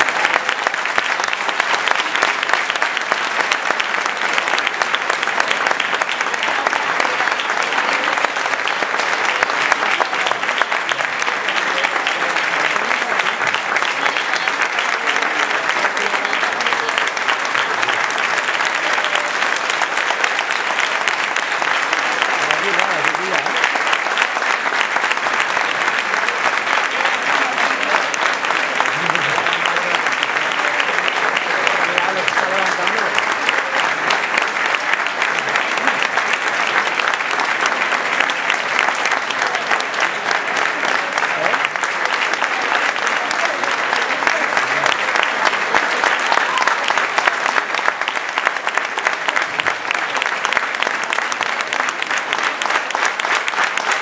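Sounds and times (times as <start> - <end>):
audience applauding: 0.0 - 54.0.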